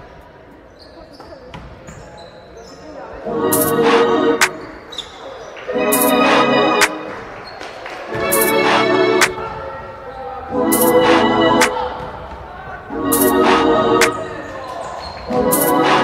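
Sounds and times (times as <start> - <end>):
loud background music chord: 3.3 - 4.6, 5.8 - 7.1, 8.2 - 9.4, 10.5 - 12.0, 12.9 - 14.4, 15.4 - 16.0
game noise: 5.8 - 7.1, 8.2 - 9.4, 10.5 - 11.9, 12.9 - 14.4, 15.4 - 16.0.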